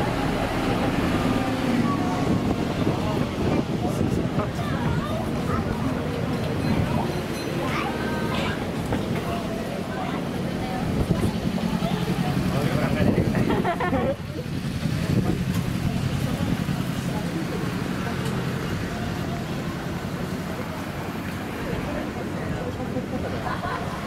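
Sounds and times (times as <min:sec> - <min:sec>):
low hum of cars driving: 0:00.0 - 0:24.0
passers-by talking: 0:00.0 - 0:24.0.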